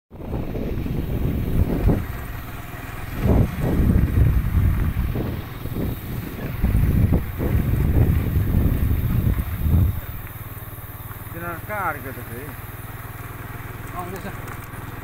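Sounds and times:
wind buffeting microphone: 0.1 - 10.7
vehicle running on road: 0.1 - 15.0.

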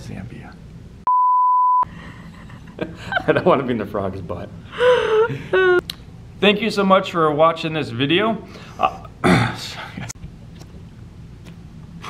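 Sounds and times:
high-pitched censor beep: 1.1 - 1.8.

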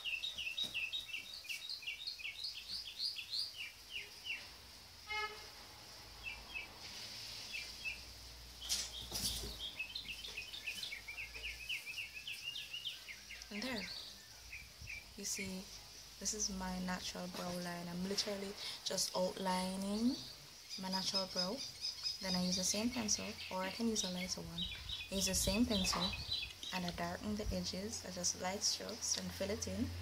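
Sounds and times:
small birds chirping: 0.0 - 4.9, 5.8 - 30.0
low rumble of road traffic: 0.0 - 30.0.

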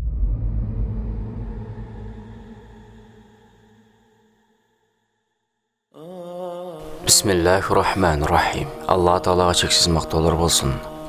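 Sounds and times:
deep cinematic impact rumble: 0.0 - 3.7.

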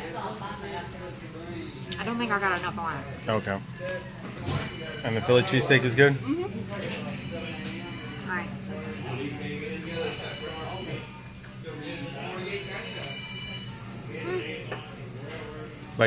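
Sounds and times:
faint music: 0.0 - 16.0
quiet talk: 0.0 - 16.0
steady low hum: 0.0 - 16.0.

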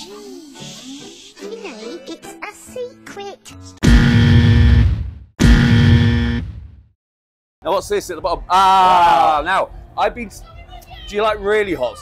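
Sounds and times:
heavy rock guitar music sting: 3.8 - 6.5.

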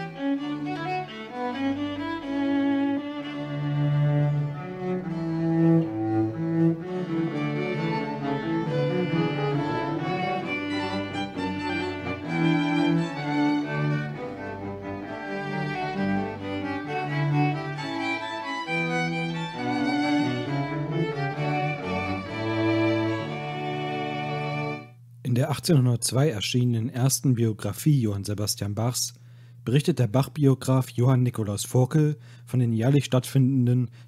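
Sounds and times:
violins playing: 0.0 - 25.0
low cello line: 0.0 - 26.3.

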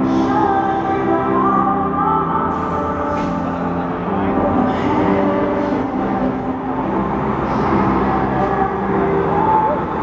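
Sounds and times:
crowd noise: 0.0 - 10.0
live piano ballad with singing: 0.0 - 10.0.

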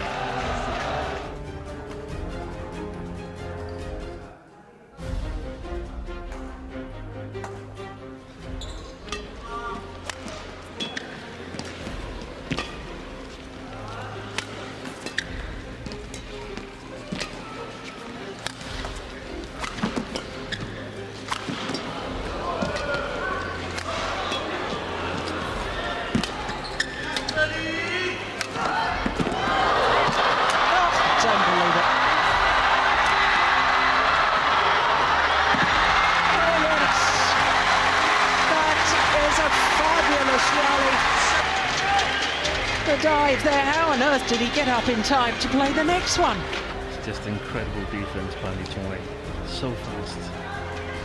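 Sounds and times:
crowd noise: 0.0 - 2.2, 9.8 - 49.3
shoe squeaks on court floor: 8.6 - 9.0, 10.8 - 11.2, 15.0 - 15.4, 26.2 - 27.4
racket striking shuttlecock: 21.2 - 21.9.

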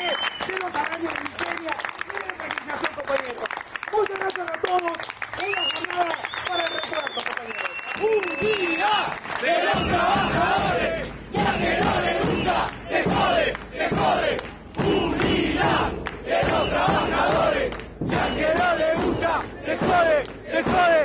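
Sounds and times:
crowd chanting: 8.7 - 21.0.

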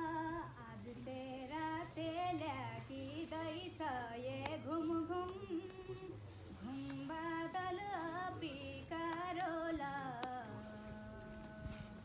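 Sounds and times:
girl singing unaccompanied: 0.0 - 12.0.

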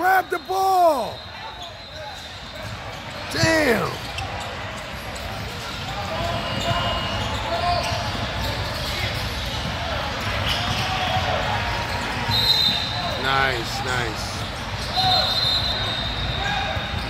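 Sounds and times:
hubbub of distant voices: 0.0 - 17.0.

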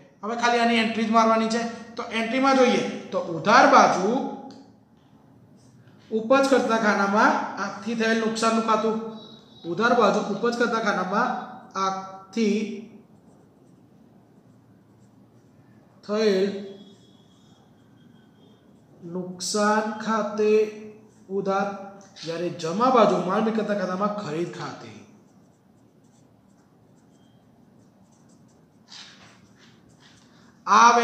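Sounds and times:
marker writing on paper: 13.0 - 15.6, 24.1 - 30.6.

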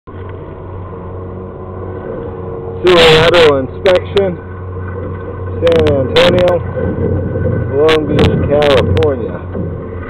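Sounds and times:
low mechanical hum: 0.1 - 10.0.

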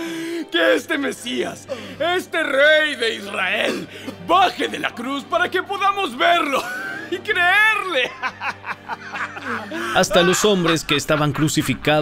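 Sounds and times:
background music: 0.0 - 12.0
people snickering: 8.0 - 12.0.

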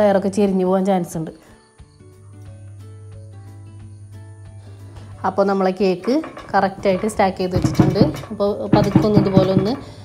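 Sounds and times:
woman narrating: 0.0 - 1.4, 5.2 - 10.0
light background music: 0.0 - 10.0.

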